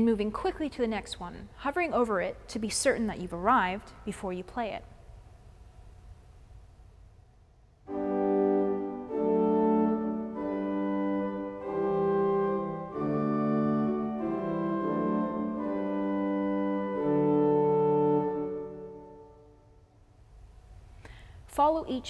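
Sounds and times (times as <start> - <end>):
pipe organ sustained chords: 7.9 - 19.8.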